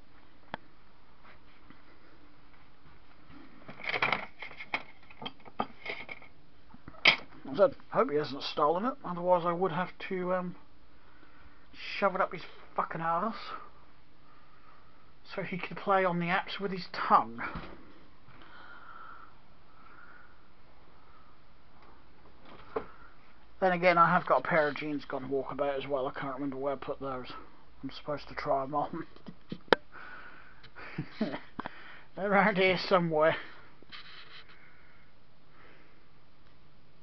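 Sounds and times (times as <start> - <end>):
background hiss: 0.0 - 37.0
soft breaths through the nose: 13.5 - 15.2, 17.8 - 21.8, 33.4 - 36.2.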